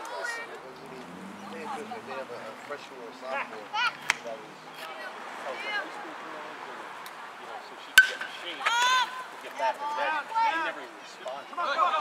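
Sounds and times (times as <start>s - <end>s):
metal bat hitting ball: 8.0s - 8.4s
spectator shouting: 8.6s - 9.3s.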